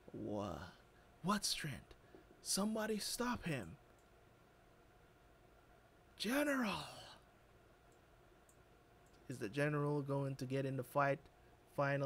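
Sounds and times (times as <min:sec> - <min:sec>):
faint clicks: 0:07.9 - 0:09.3.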